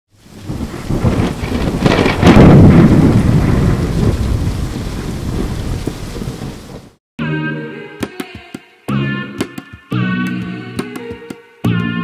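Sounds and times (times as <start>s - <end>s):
steady rain: 0.1s - 7.0s
thunder rumbling: 0.2s - 7.0s.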